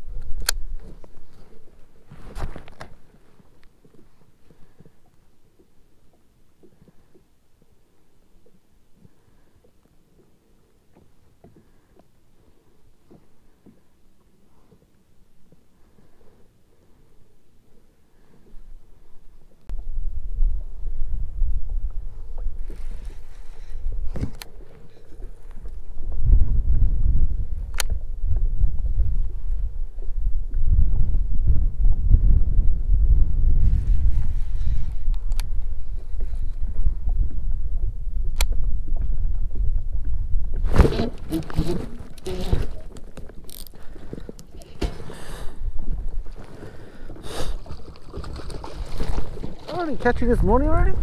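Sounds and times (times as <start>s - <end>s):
wind buffeting microphone: 19.7s - 51.0s.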